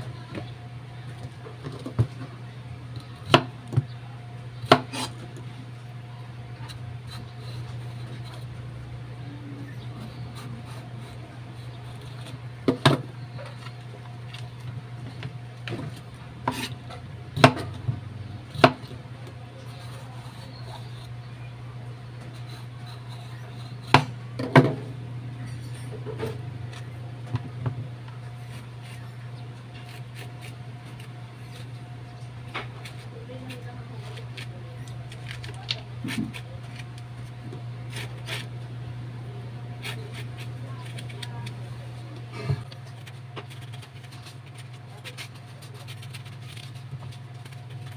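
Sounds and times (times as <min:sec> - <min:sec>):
quiet cutting and handling: 0:00.1 - 0:47.9.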